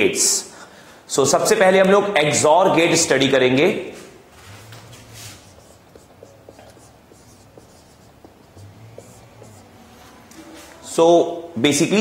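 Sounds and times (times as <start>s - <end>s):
marker squeaking on whiteboard: 4.3s - 10.8s.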